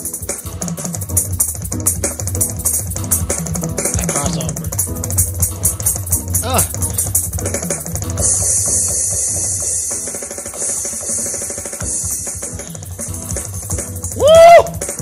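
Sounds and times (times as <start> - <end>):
fast electronic drumming: 0.0 - 15.0.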